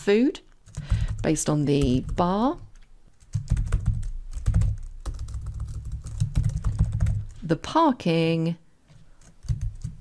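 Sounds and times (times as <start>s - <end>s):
computer keyboard typing: 0.6s - 7.4s, 9.2s - 10.0s.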